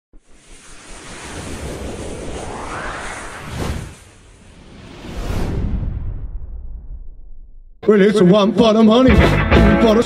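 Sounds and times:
rushing whoosh: 0.2 - 7.6.

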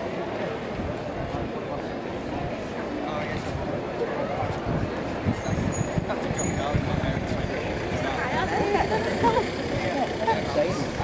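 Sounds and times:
indistinct voices of passers-by: 0.0 - 11.0.

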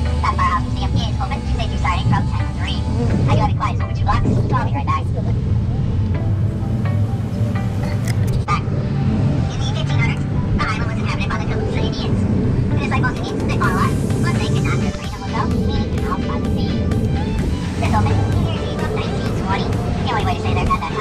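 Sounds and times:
indistinct voices: 0.0 - 6.2, 7.3 - 21.0
low engine rumble: 0.0 - 21.0
road noise: 0.0 - 21.0.

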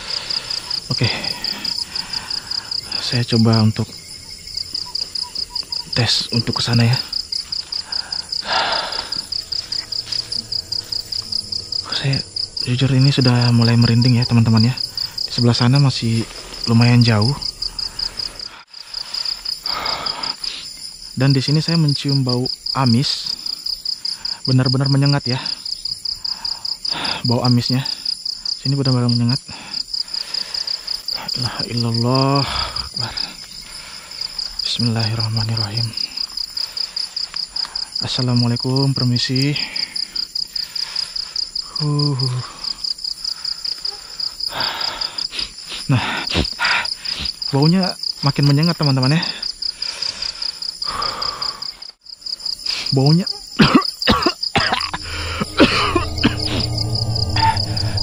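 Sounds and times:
crickets chirping: 0.0 - 58.0.

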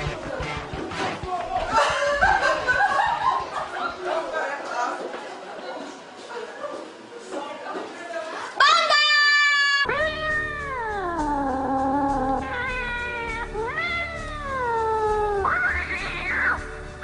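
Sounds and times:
background music: 0.0 - 3.7, 9.9 - 17.0
meow-like wails: 9.4 - 16.7.

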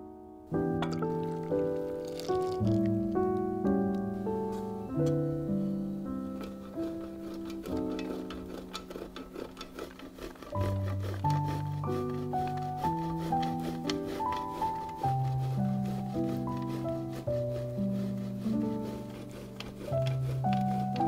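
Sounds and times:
instrumental background music: 0.0 - 21.0
cheese scraping on metal grater: 0.8 - 2.9, 6.0 - 21.0.

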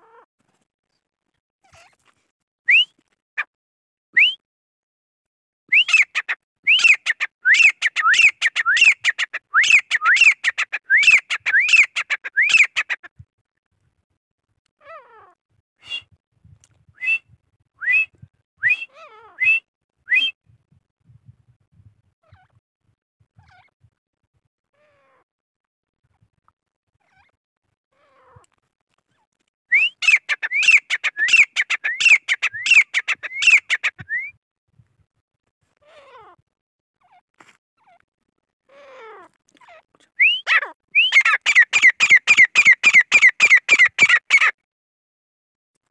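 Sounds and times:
francolin calling: 29.8 - 34.2, 40.2 - 44.5.

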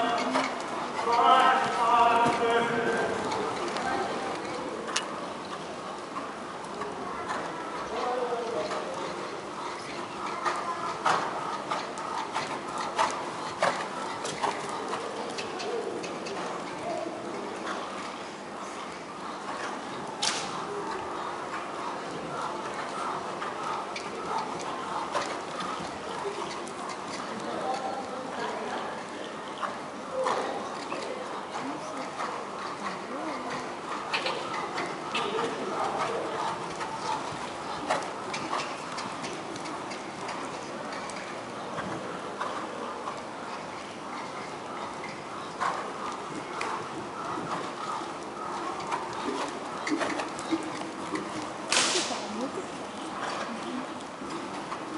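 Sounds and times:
faint horse hoofbeats cantering: 0.0 - 54.9
indoor arena background: 0.0 - 54.9
whip cracking: 51.7 - 52.3.

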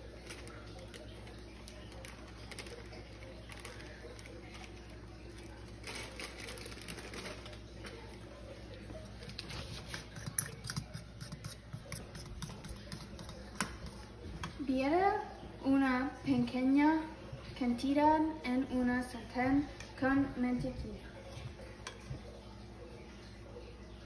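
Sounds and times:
plastic bag rustling: 0.0 - 8.5
spoon stirring batter: 7.6 - 14.8.

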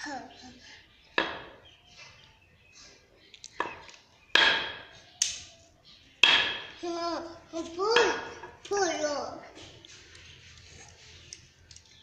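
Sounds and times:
mallet knocking on concrete floor: 4.4 - 4.9, 6.2 - 6.7.

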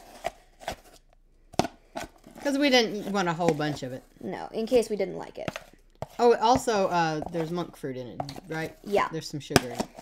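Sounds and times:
scoop knocking and scraping plastic tub: 0.0 - 10.0.

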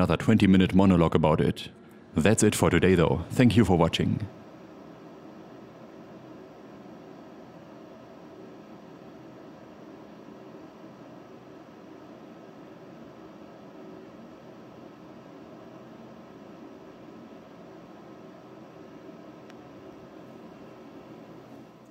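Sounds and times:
constant faint hiss: 0.0 - 21.9
slight hum: 0.0 - 21.9.

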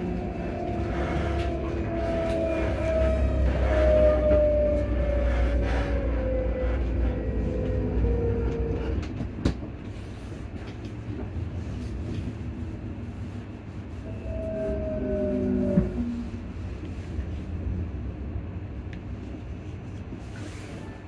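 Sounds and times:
traction motors whining: 0.0 - 9.2
wheels rumbling on rail: 0.0 - 21.0.

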